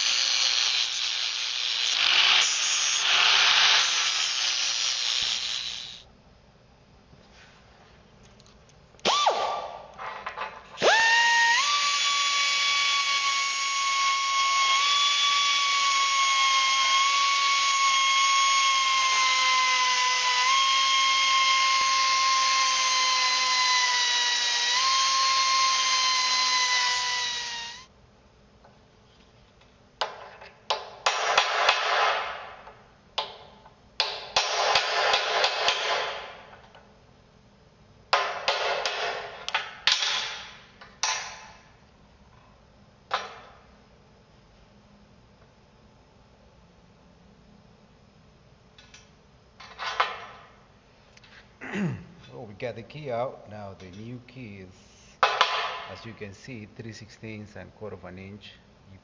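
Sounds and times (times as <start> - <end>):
cut-off grinder whining: 10.8 - 27.9.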